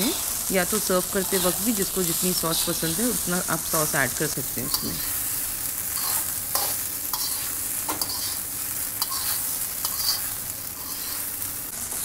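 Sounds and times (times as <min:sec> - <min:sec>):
rice sizzling in a wok: 0:00.0 - 0:12.0
spatula scraping a wok: 0:00.1 - 0:03.0, 0:04.5 - 0:11.7.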